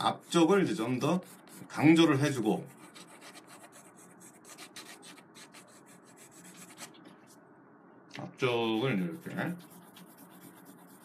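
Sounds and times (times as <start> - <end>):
pencil scratching on paper: 0.0 - 7.1, 8.6 - 11.0.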